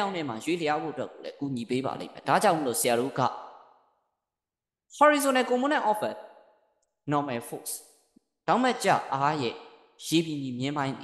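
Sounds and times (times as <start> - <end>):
man speaking: 0.0 - 3.4.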